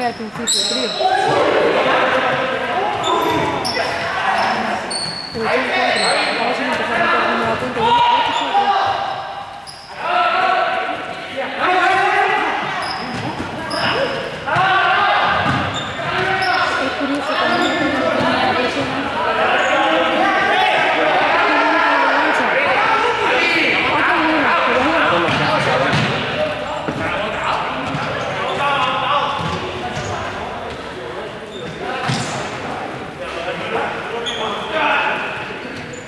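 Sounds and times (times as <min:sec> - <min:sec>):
sports shoes squeaking on floor: 0:00.0 - 0:01.4, 0:02.9 - 0:10.0, 0:12.6 - 0:14.5, 0:15.2 - 0:20.8, 0:23.4 - 0:30.8, 0:31.4 - 0:32.5, 0:34.2 - 0:34.9
players calling and shouting: 0:00.0 - 0:36.0.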